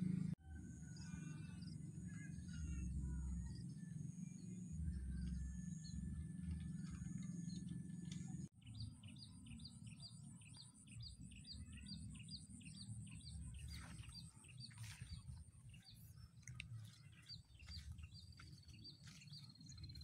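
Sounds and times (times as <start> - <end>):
low rumble: 0.0 - 9.3, 11.0 - 20.0
bird chirping: 0.8 - 20.0.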